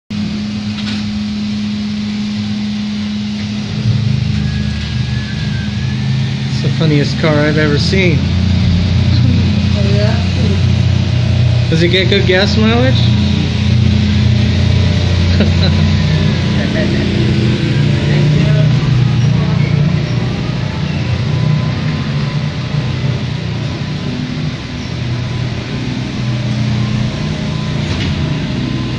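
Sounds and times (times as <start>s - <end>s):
floor scrubber motor and vacuum hum: 0.2s - 28.9s.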